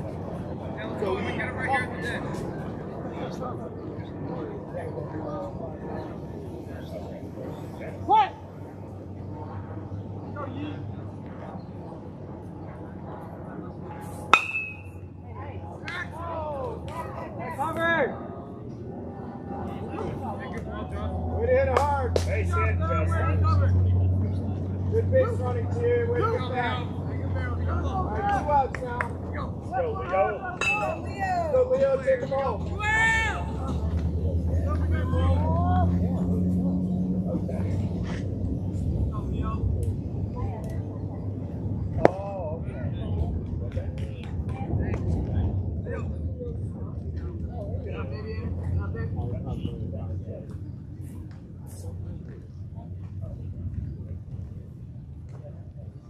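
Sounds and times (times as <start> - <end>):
steady low rumble: 0.0 - 15.8, 16.4 - 56.0
distant voices calling out: 0.0 - 56.0.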